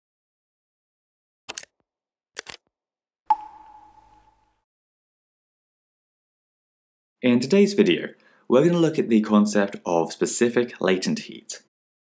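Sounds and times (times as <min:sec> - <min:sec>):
sharp ding: 0:03.3 - 0:04.5.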